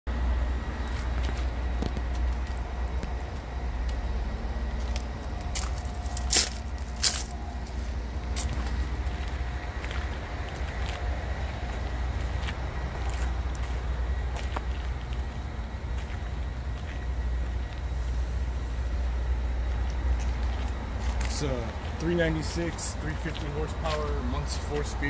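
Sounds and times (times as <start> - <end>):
low outdoor rumble: 0.1 - 25.0.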